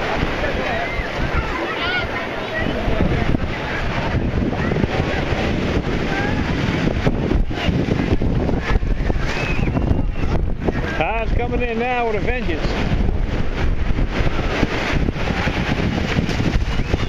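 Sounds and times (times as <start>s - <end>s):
surf breaking on beach: 0.0s - 17.0s
wind noise on microphone: 0.0s - 17.0s.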